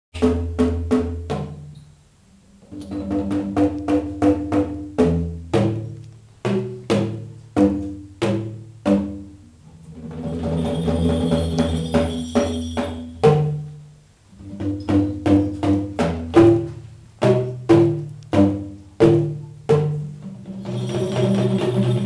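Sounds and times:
bamboo tube drums melody: 0:00.2 - 0:22.0.

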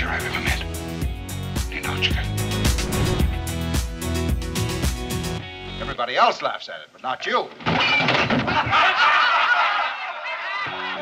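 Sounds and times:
roomful of people laughing: 0:08.4 - 0:11.0.

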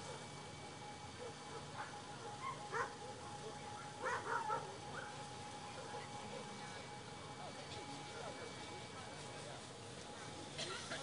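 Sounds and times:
dog barking: 0:01.2 - 0:03.1, 0:04.0 - 0:05.2.

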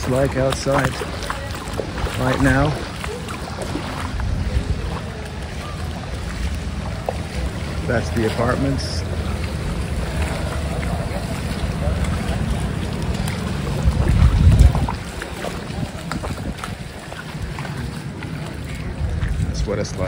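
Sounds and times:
water splashing: 0:00.0 - 0:20.0
wind buffeting microphone: 0:00.0 - 0:20.0.

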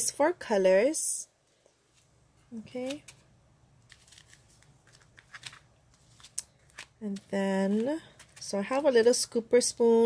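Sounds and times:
plastic bags crinkling: 0:03.8 - 0:08.6.

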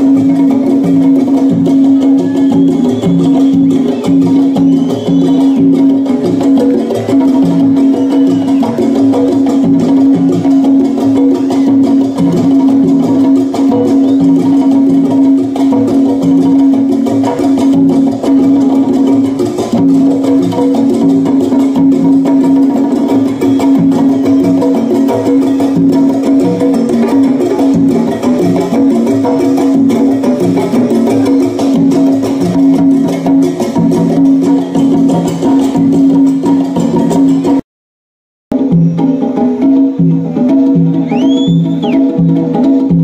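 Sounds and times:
congas: 0:00.0 - 0:37.6, 0:38.5 - 0:43.0
latin band playing: 0:00.0 - 0:37.6, 0:38.5 - 0:43.0.

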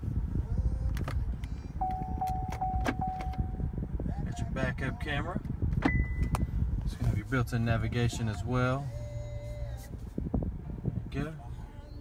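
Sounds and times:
low car cabin hum: 0:00.0 - 0:12.0
touchscreen tone: 0:01.8 - 0:03.6.

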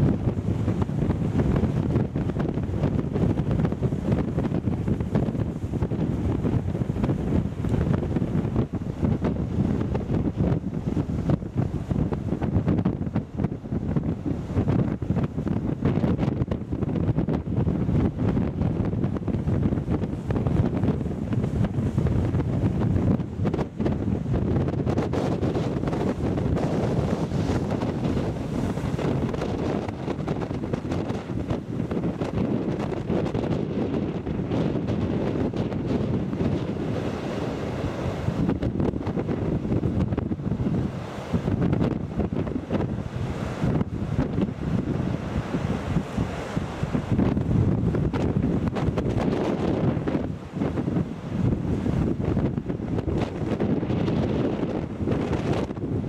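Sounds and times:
surf washing over rocks: 0:00.0 - 0:56.0
wind buffeting microphone: 0:00.0 - 0:56.0.

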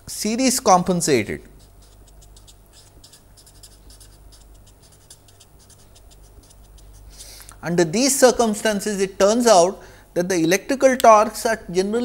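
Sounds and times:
low steady hum: 0:00.0 - 0:12.0
marker scratching on paper: 0:01.5 - 0:07.3.

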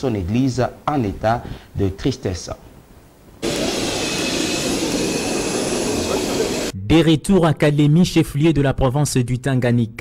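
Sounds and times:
jet engines running: 0:03.4 - 0:06.8.

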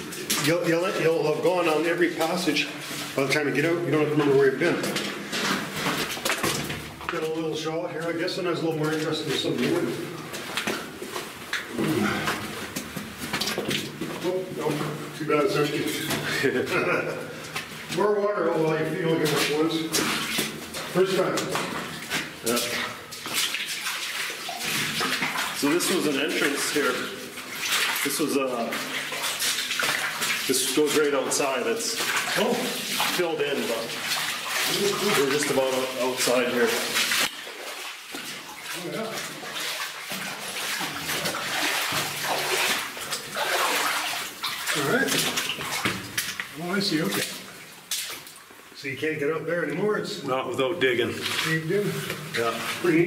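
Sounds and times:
boots wading through water: 0:00.0 - 0:53.0
footsteps on rock floor: 0:04.2 - 0:07.3, 0:12.3 - 0:15.0
loud splash: 0:21.6 - 0:46.4.

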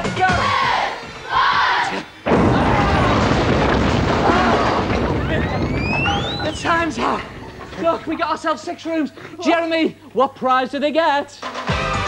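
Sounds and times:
voices shouting: 0:00.2 - 0:03.3
loud burst of noise: 0:02.3 - 0:07.9.

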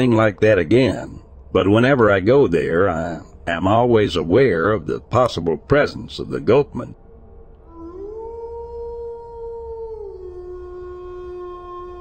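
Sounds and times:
low background rumble: 0:00.0 - 0:12.0
long howl: 0:07.4 - 0:12.0.

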